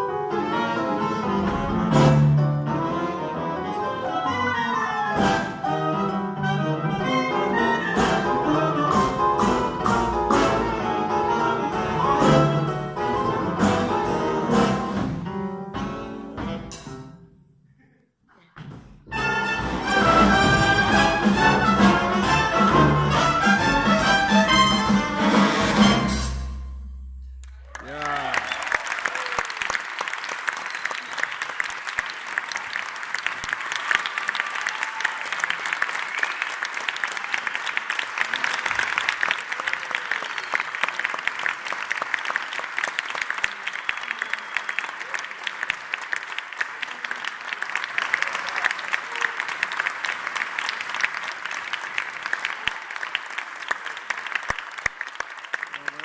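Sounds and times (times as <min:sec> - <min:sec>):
audience applauding: 0:27.4 - 0:56.0.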